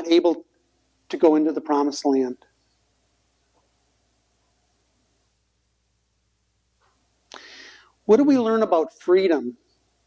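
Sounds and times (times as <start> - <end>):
man inhaling sharply: 7.3 - 8.0.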